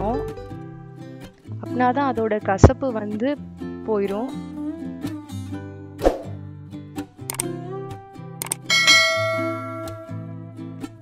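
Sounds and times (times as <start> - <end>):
instrumental music with held notes: 0.0 - 5.9, 6.9 - 11.0
sharp clicks: 7.3 - 7.5, 8.4 - 8.7
bright bell-like ding: 8.7 - 10.2.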